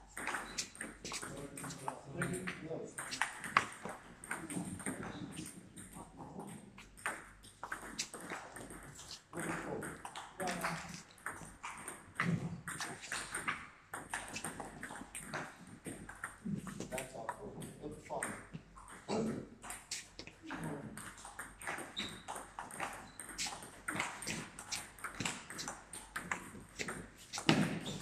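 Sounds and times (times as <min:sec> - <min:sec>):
background voices talking: 0:00.4 - 0:06.8, 0:08.9 - 0:11.0, 0:16.4 - 0:21.0
table tennis ball clicks: 0:03.0 - 0:05.6, 0:21.0 - 0:28.0.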